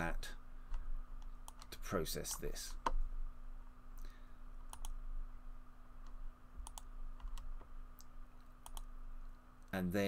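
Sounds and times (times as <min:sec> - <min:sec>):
faint steady hum: 0:00.0 - 0:10.0
computer mouse clicking: 0:00.7 - 0:01.7, 0:04.7 - 0:05.0, 0:06.0 - 0:08.9.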